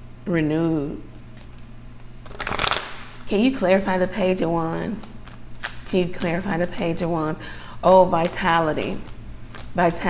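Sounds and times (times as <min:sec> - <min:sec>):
cards being shuffled: 0:01.2 - 0:03.3, 0:03.9 - 0:07.2, 0:07.8 - 0:10.0.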